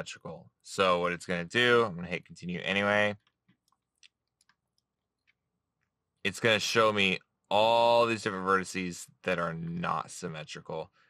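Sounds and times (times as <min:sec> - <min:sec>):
person speaking: 0:00.0 - 0:03.3, 0:06.3 - 0:10.9.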